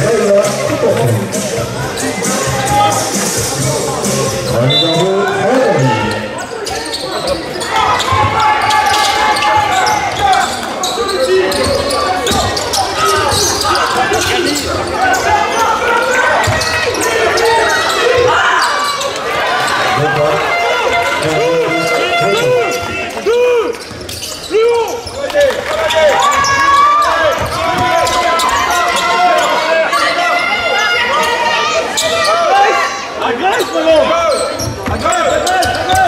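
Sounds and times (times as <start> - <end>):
voices echoing in gym: 0.0 - 36.0.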